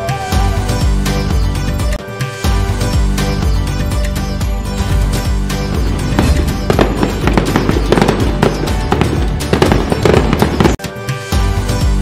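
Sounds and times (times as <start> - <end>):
festive background music: 0.0 - 12.0
firework bangs and crackles: 5.6 - 10.8.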